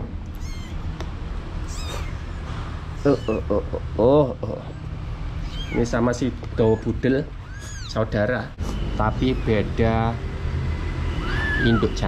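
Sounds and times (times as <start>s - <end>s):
kitten mewing: 0.3s - 1.0s, 1.6s - 3.9s, 5.4s - 8.0s, 8.7s - 9.8s, 11.2s - 12.0s.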